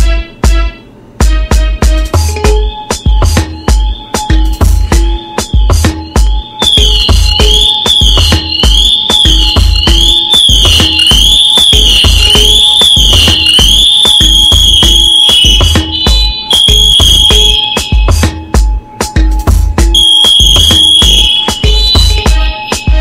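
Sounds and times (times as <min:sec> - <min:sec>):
background music with steady beat: 0:00.0 - 0:23.0
high-pitched electronic alarm warbling: 0:02.4 - 0:18.2, 0:20.0 - 0:22.2.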